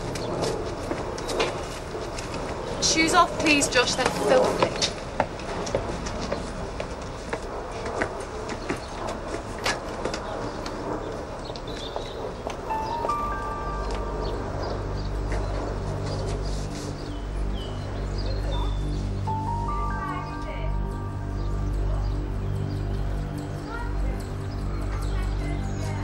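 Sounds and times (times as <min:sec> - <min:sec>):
background score music: 0:12.5 - 0:26.0.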